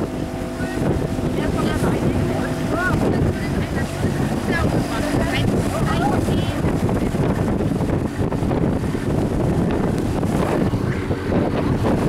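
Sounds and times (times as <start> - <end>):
boat engine: 0.0 - 12.0
water rushing past hull: 0.0 - 12.0
wind buffeting microphone: 0.0 - 12.0.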